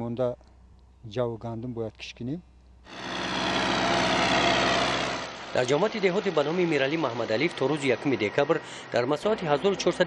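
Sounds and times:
tractor diesel engine running: 2.9 - 10.0.

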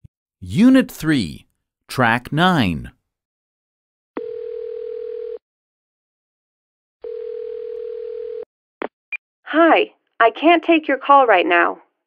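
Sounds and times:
telephone ringback tone: 4.2 - 5.4, 7.0 - 8.4.

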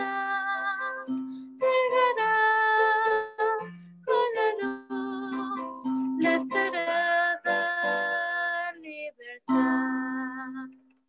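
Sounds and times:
girl singing a hymn: 0.0 - 10.8.

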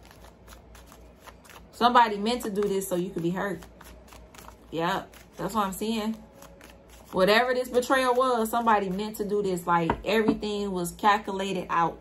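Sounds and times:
cards being shuffled: 0.0 - 1.8, 2.4 - 7.8
woman speaking: 1.8 - 3.6, 4.7 - 6.3, 7.1 - 12.0.

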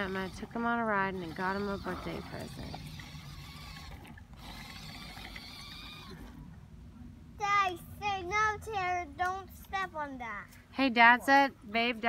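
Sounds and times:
toy car electric motor whine: 0.0 - 6.4.

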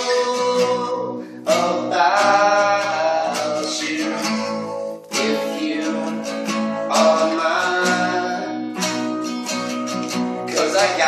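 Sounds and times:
acoustic guitars strumming chords: 0.0 - 11.0.

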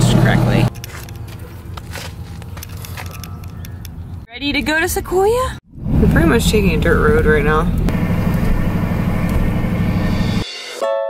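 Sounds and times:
low steady rumble: 5.6 - 10.4.

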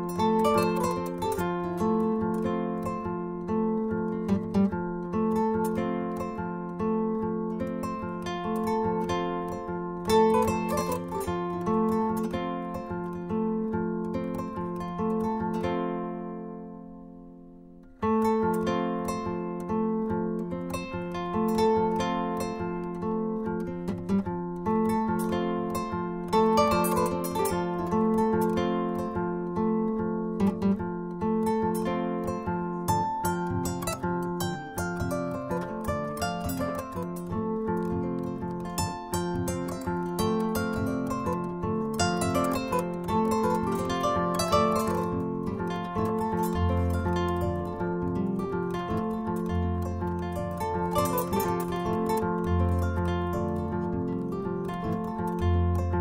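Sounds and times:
kora plucked melody: 0.0 - 16.9, 17.8 - 56.0.

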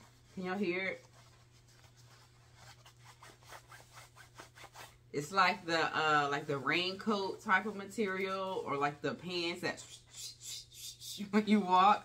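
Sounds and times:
fingers rubbing nylon fabric: 0.0 - 11.9.

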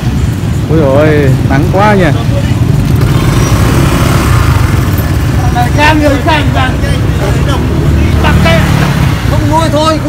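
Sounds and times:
faint hubbub: 0.0 - 10.0.

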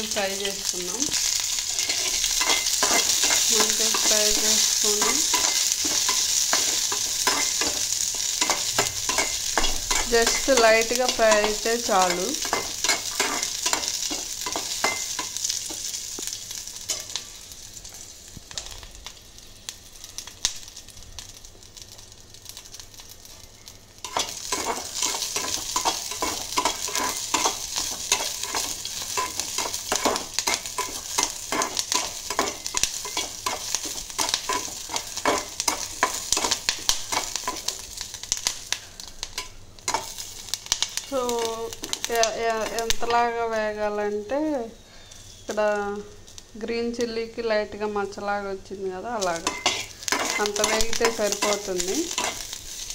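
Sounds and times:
chillies sizzling in oil: 0.0 - 52.9.

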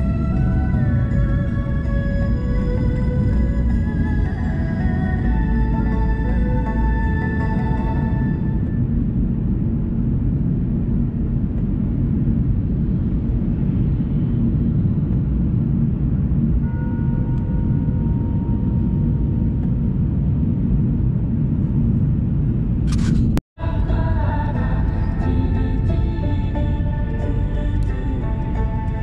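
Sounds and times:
music: 0.0 - 9.6, 16.6 - 20.0, 23.6 - 29.0
car tyre and engine rumble: 0.0 - 24.9.

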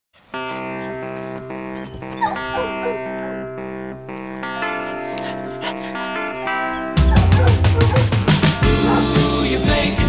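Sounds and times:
sustained chords music: 0.3 - 10.0
dog whining: 1.8 - 3.4, 6.8 - 9.1.

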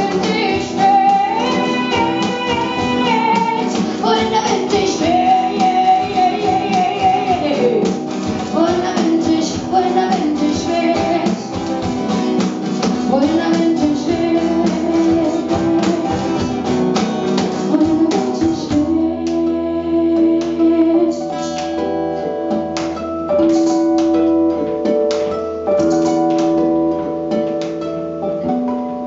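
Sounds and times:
cajon drumming: 0.0 - 19.6, 20.2 - 29.0
acoustic guitars: 0.0 - 29.0.

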